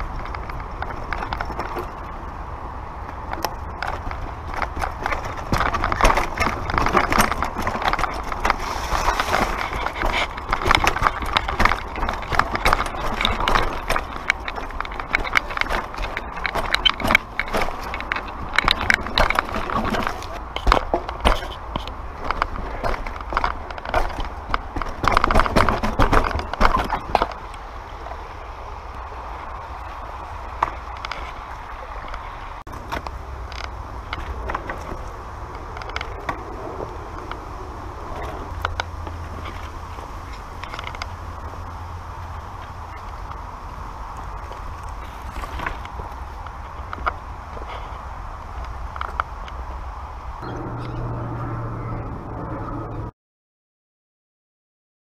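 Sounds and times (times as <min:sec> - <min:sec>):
bike clicks and rattles: 0:00.0 - 0:50.1
bike tyres rumbling on dirt: 0:00.0 - 0:51.9.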